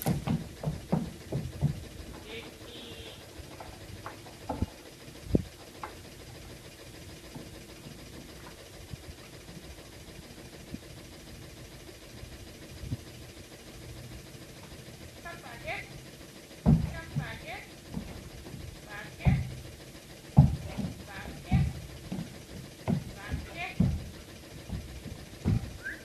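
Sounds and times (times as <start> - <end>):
dull thumps: 0.0 - 6.2, 16.5 - 26.0
steady low hum: 0.0 - 26.0.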